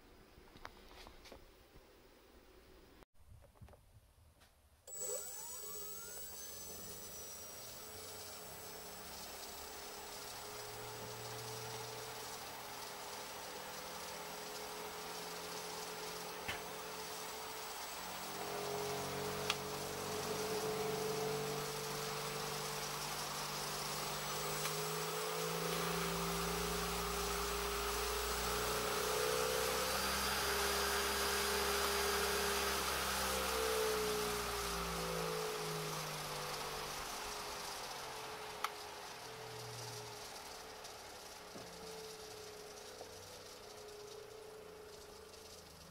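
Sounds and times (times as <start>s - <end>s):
electric motor whining: 4.9s - 45.8s
hiss: 7.8s - 45.9s.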